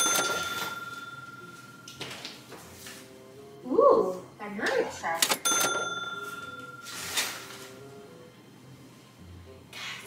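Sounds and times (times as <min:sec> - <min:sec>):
cash register clack: 0:00.0 - 0:02.2, 0:05.2 - 0:07.6
bright bell ding: 0:05.4 - 0:07.4.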